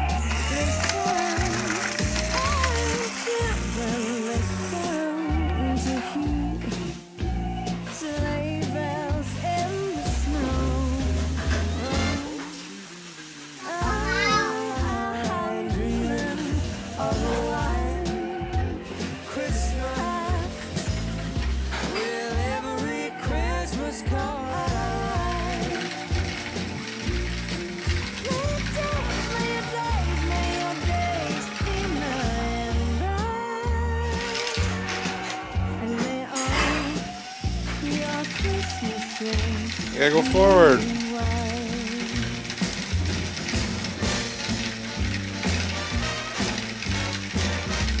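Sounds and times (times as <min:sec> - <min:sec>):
music with singing and bass beat: 0:00.0 - 0:13.0, 0:13.6 - 0:48.0
toy train gears clicking and whirring: 0:00.0 - 0:48.0.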